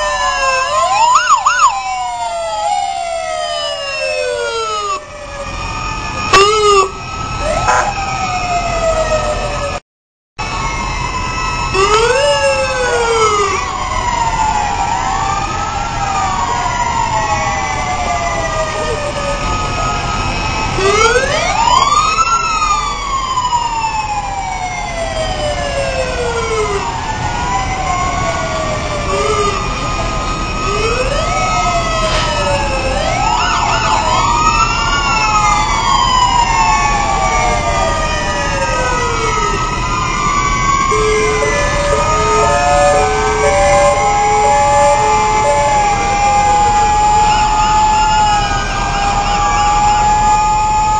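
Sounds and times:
sirens wailing: 0:00.0 - 0:09.8, 0:10.4 - 0:50.9
trucks rumbling by: 0:00.0 - 0:09.8, 0:10.4 - 0:50.9
two-tone alternating siren: 0:00.0 - 0:09.8, 0:10.4 - 0:50.9.

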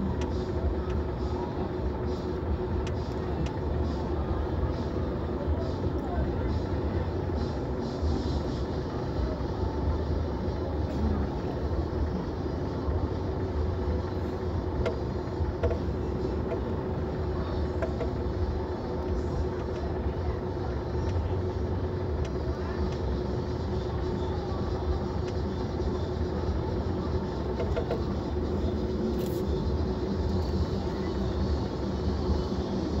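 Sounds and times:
car interior rumble: 0:00.0 - 0:33.0.

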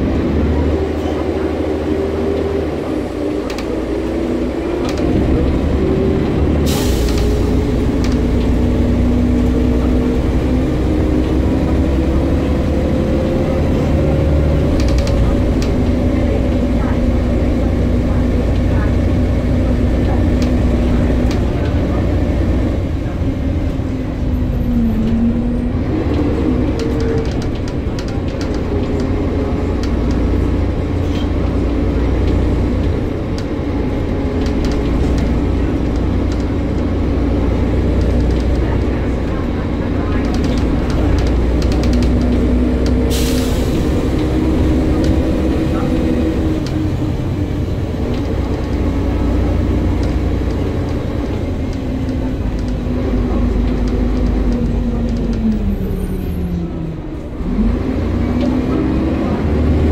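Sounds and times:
bus engine rumble: 0:00.0 - 0:59.9.

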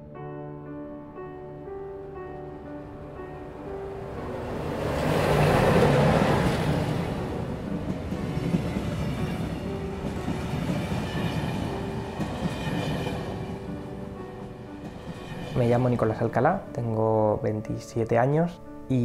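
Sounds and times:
soft music: 0:00.0 - 0:19.0
electric train passing: 0:00.5 - 0:17.6.

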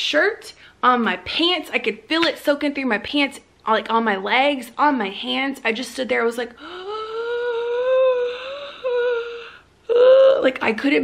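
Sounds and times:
woman wordless vocal sound: 0:06.6 - 0:10.6.

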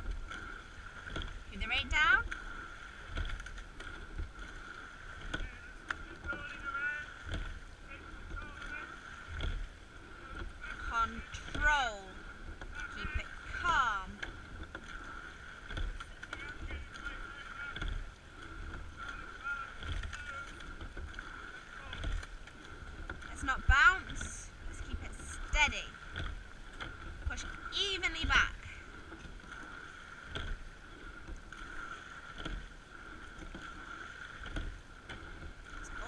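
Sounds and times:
boat parts squeaking: 0:00.0 - 0:36.0
oar stroke clunks: 0:00.0 - 0:36.0.

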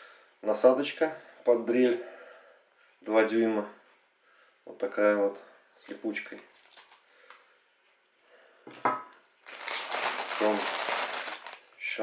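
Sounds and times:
plastic bag crinkling: 0:09.4 - 0:11.8.

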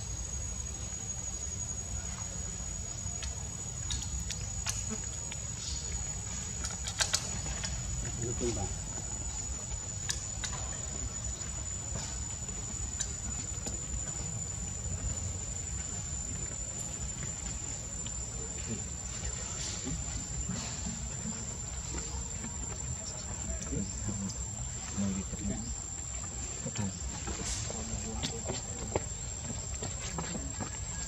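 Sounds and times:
high-pitched insect drone: 0:00.0 - 0:31.0.

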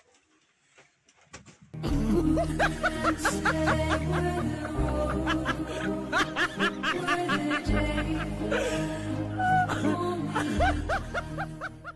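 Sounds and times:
background music with bass: 0:01.8 - 0:11.9
person laughing: 0:01.9 - 0:08.8, 0:09.4 - 0:11.9.

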